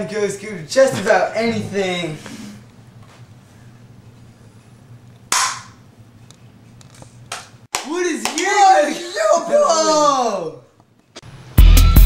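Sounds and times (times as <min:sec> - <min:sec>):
man speaking: 0:00.0 - 0:02.2, 0:07.9 - 0:10.6
quiet room hum: 0:00.0 - 0:11.5.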